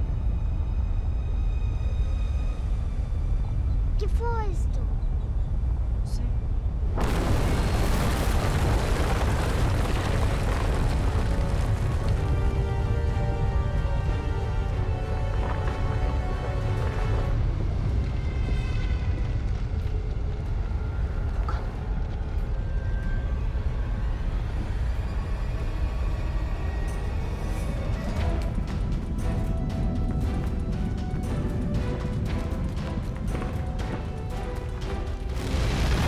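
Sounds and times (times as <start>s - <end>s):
film score music: 0.0s - 36.0s
deep volcanic eruption rumble: 6.6s - 36.0s.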